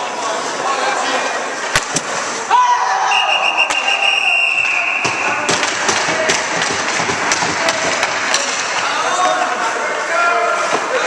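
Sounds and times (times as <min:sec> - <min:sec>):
steady noisy background: 0:00.0 - 0:11.0
hockey sticks tapping on ice: 0:04.6 - 0:09.8.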